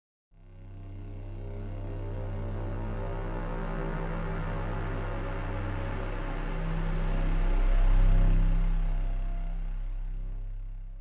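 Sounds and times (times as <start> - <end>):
deep bass drone: 0.4 - 11.0.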